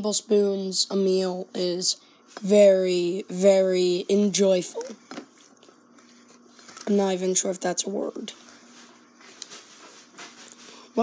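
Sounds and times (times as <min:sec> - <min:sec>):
boy speaking: 0:00.0 - 0:05.0, 0:06.8 - 0:08.4.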